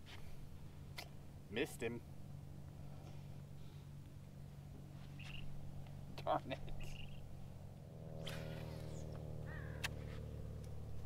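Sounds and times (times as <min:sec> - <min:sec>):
trolling motor hum: 0:00.0 - 0:11.0
fishing rod swish: 0:08.2 - 0:09.2.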